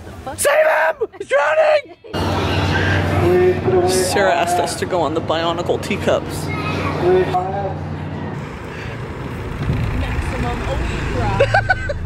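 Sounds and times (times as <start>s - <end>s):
roller coaster rumbling: 2.1s - 12.0s.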